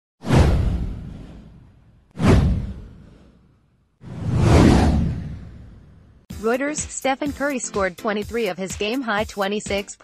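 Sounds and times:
whoosh sound effect: 0.2s - 6.1s
deep low boom: 0.3s - 3.3s.

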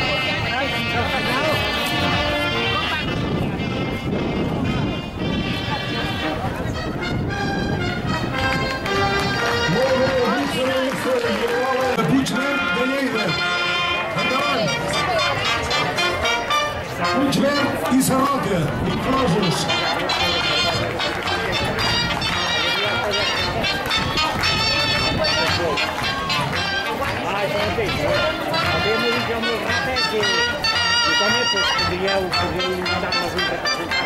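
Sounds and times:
live band with brass playing: 0.0s - 34.0s
people's voices: 0.0s - 34.0s.

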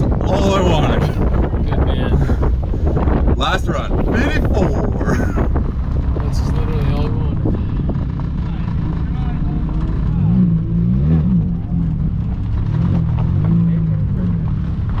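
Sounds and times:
tyres rolling on gravel: 0.0s - 10.7s, 11.5s - 15.0s
car engine at low revs: 0.0s - 15.0s.

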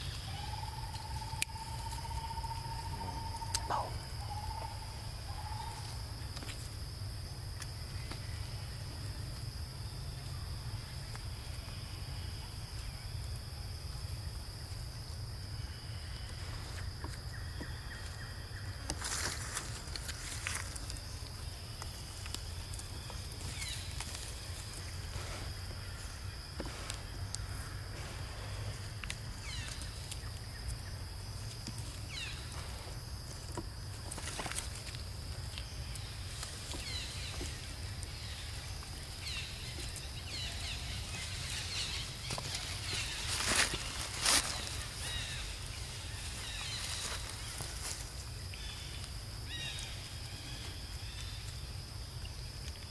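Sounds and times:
faint chirps: 0.0s - 6.0s
high-pitched insect drone: 0.0s - 6.2s.

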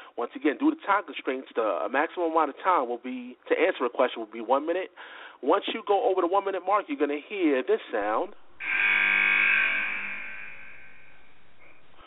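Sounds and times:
ringing musical tone: 8.6s - 12.0s.

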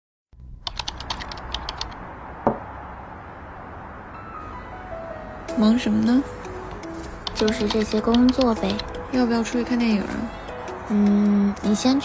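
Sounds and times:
fast typing on laptop keyboard: 0.6s - 2.0s, 6.8s - 9.0s.

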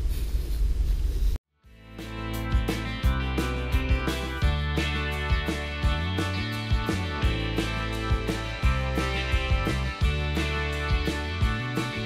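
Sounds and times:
background music: 1.6s - 12.0s.

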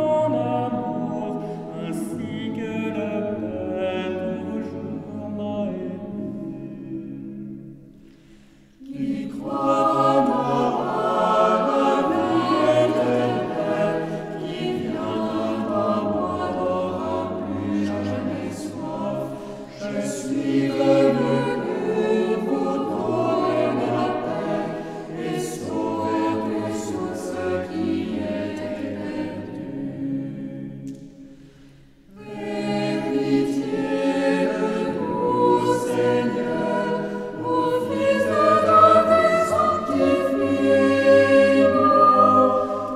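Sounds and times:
mixed choir singing a hymn: 0.0s - 42.9s.

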